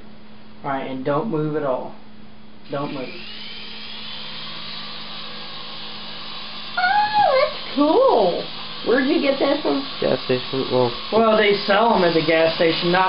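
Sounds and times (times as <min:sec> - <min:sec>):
toy helicopter rotor whine: 0:02.7 - 0:13.0
person exclaiming loudly: 0:06.8 - 0:07.6.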